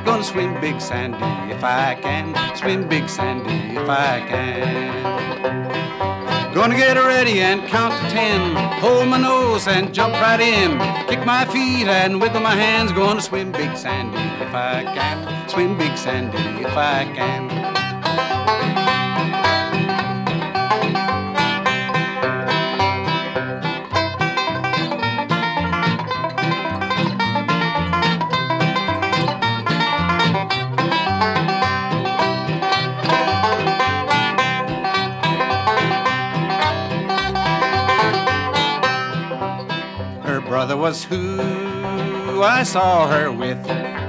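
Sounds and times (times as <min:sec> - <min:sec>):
person singing: 0:00.0 - 0:05.4, 0:06.4 - 0:17.7, 0:37.3 - 0:38.5, 0:40.2 - 0:43.7
banjo picking melody: 0:00.0 - 0:44.0
strummed acoustic guitar: 0:00.0 - 0:44.0.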